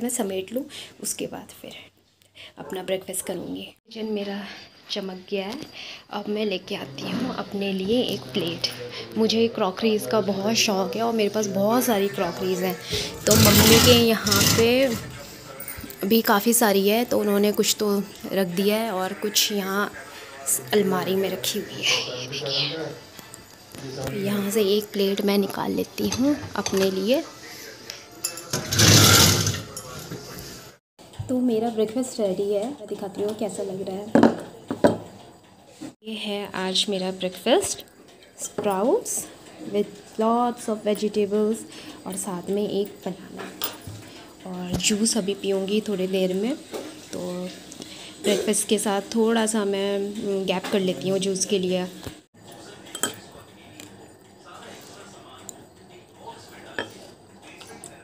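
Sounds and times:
rummaging in a cupboard: 0:13.0 - 0:15.2, 0:28.5 - 0:30.5
spoon clinking glass bowl: 0:28.2 - 0:28.7, 0:52.9 - 0:53.3.

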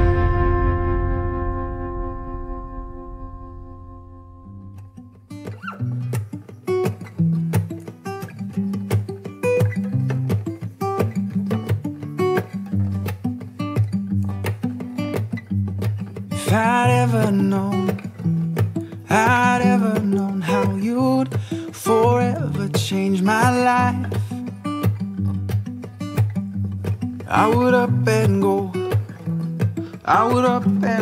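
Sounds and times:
held musical chord: 0:00.0 - 0:05.0
acoustic guitar picking notes: 0:00.0 - 0:31.0
person singing: 0:16.4 - 0:18.2, 0:18.8 - 0:24.6, 0:27.3 - 0:29.1, 0:29.8 - 0:31.0.

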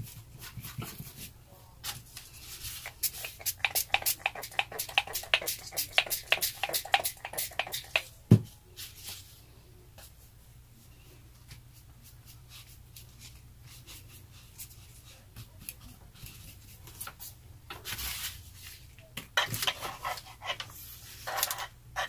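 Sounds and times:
hands rubbing paper: 0:02.3 - 0:08.0.

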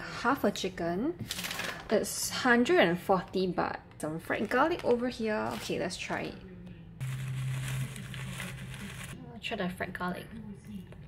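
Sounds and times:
plastic bag crinkling: 0:07.0 - 0:09.2.

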